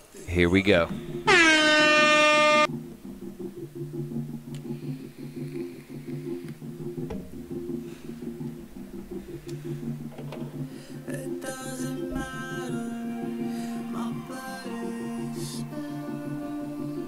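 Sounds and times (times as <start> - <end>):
low synthesizer arpeggio: 0.9 - 5.3
air horn sound effect: 1.2 - 2.7.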